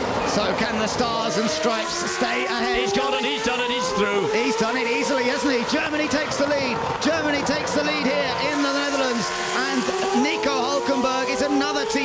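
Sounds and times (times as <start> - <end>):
race cars passing at high revs: 0.0 - 12.0.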